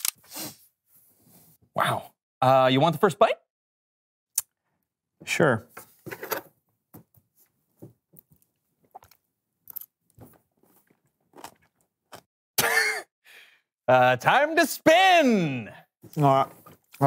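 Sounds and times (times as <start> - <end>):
person chewing: 8.9 - 10.0, 10.8 - 12.3.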